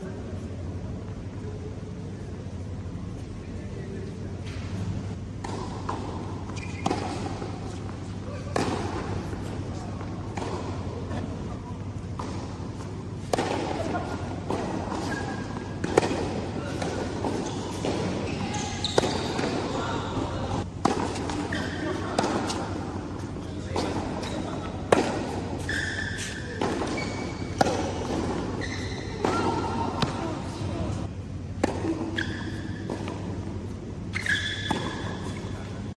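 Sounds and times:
low hall hum: 0.0s - 36.0s
shoes squeaking on court: 3.8s - 11.3s, 11.9s - 31.1s, 31.7s - 35.9s
racket striking tennis ball: 5.4s - 10.9s, 13.2s - 19.8s, 20.8s - 22.8s, 23.7s - 30.5s, 31.6s - 33.6s, 34.2s - 35.5s.

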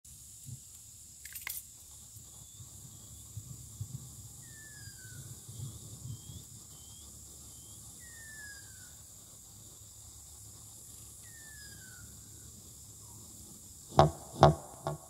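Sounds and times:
steady high-pitched hum: 0.1s - 15.0s
bird whistling: 4.4s - 9.0s, 11.2s - 12.1s.

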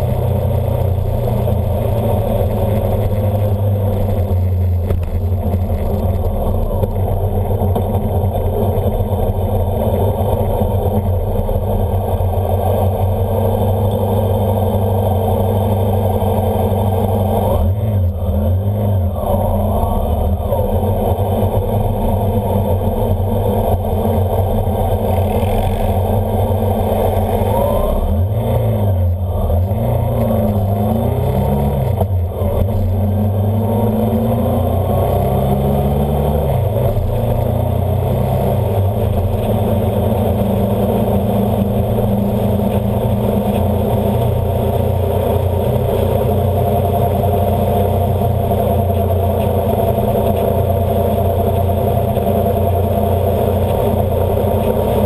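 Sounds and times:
road noise: 0.0s - 55.0s
vehicle engine running: 0.0s - 55.0s.

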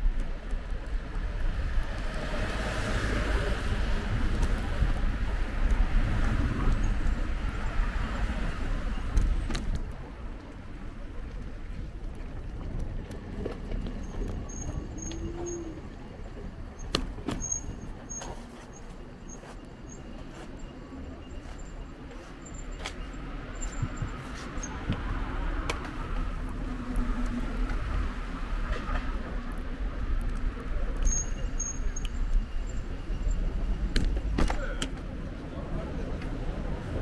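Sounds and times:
distant road traffic rumble: 0.0s - 37.0s.

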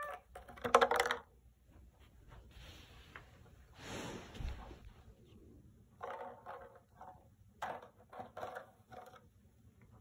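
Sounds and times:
plastic container knocking and rattling: 0.3s - 1.3s, 6.0s - 9.3s.

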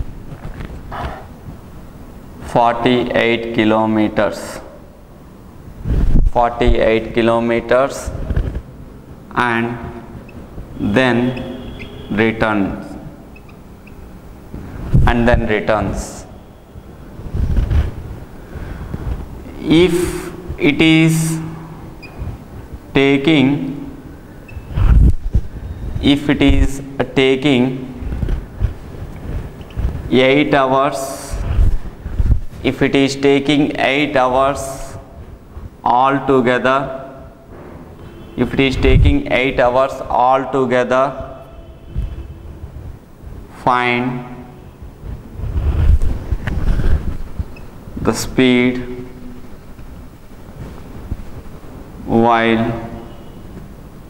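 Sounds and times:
clothing rubbing against microphone: 17.0s - 19.4s, 22.0s - 22.8s, 24.5s - 26.0s, 27.9s - 30.1s, 31.3s - 32.7s, 44.7s - 48.0s, 49.4s - 52.0s.

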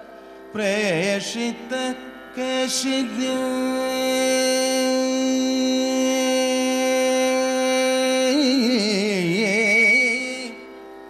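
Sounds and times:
person singing ornamented notes: 0.0s - 10.7s.

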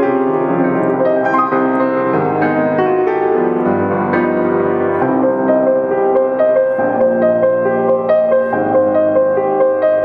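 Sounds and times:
solo grand piano melody: 0.0s - 10.0s.

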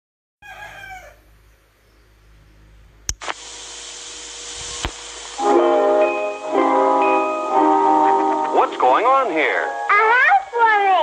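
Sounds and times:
film soundtrack hiss: 1.7s - 11.0s
sharp clicks: 3.1s - 3.4s, 4.8s - 5.4s
jingle music: 5.4s - 10.7s.

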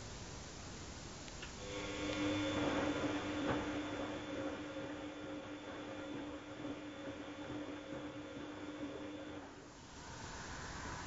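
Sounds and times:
washing machine motor hum: 0.0s - 11.0s.

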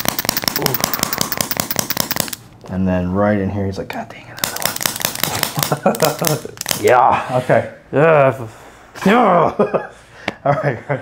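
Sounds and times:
rapid sharp clicks: 0.0s - 2.5s, 4.4s - 6.9s.

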